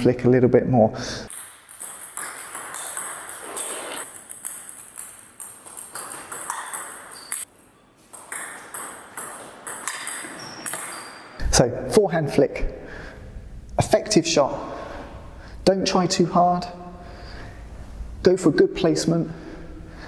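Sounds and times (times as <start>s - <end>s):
table tennis ball clicking: 1.3s - 7.5s, 8.1s - 11.0s.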